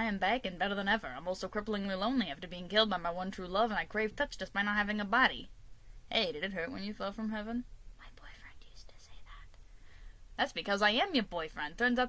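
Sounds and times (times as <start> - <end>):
person whispering: 8.0 - 9.6.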